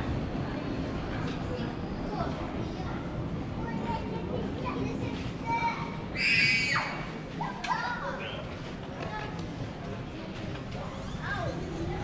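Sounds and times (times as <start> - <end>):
people talking: 0.0 - 6.1, 7.3 - 12.0.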